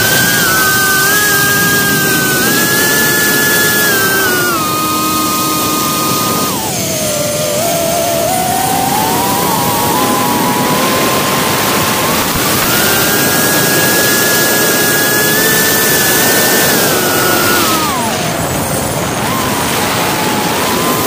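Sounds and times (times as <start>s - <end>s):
small aircraft motor whine: 0.0s - 21.0s
wind noise: 0.0s - 21.0s.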